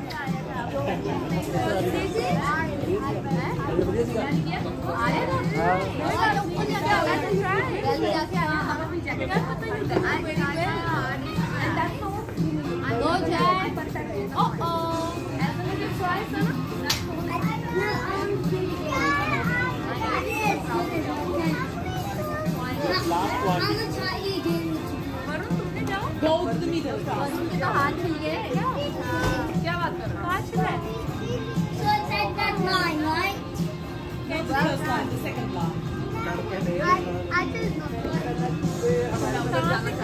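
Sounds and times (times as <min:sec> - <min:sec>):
children calling and chattering: 0:00.0 - 0:40.0
music playing: 0:00.0 - 0:40.0.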